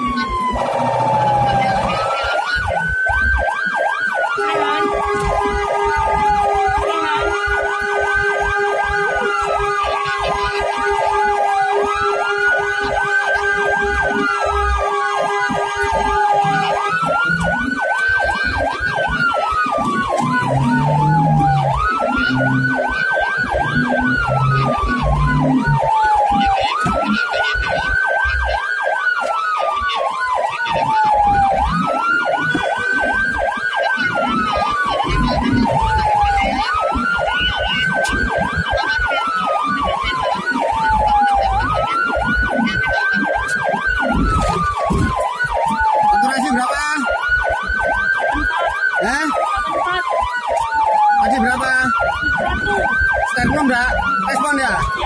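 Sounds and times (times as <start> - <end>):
ambulance siren wailing: 0.0 - 55.0
steady siren tone: 0.0 - 55.0
warbling siren sweep: 0.0 - 55.0.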